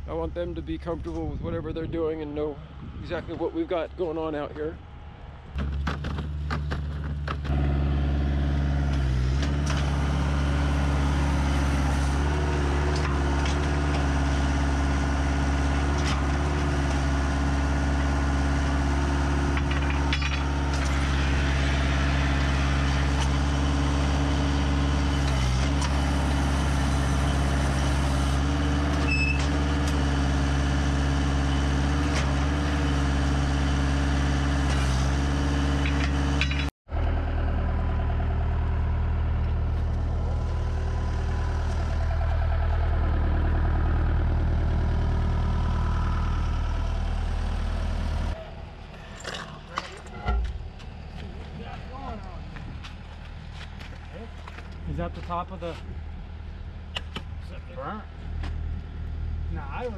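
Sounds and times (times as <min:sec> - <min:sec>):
diesel engine running loud: 0:04.8 - 0:56.9.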